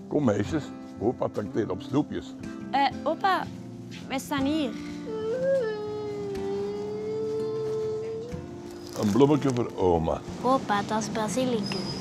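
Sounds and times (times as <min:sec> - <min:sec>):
girl crying: 0:04.8 - 0:08.5.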